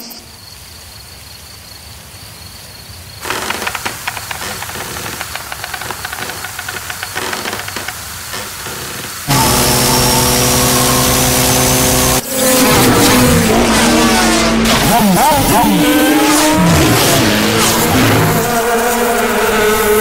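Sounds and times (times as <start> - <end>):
rapid clicking: 3.2 - 9.3
engine pitch bending: 3.2 - 18.6
motor drone: 3.2 - 20.0.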